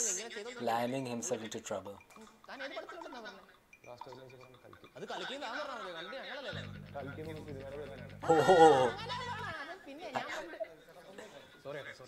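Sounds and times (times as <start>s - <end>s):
person speaking: 6.5s - 9.6s.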